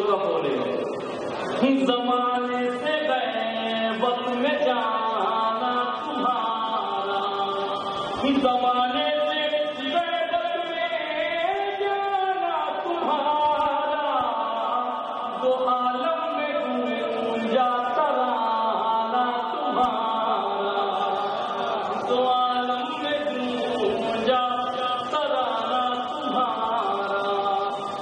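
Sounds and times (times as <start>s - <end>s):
man chanting a melody: 1.6s - 28.0s.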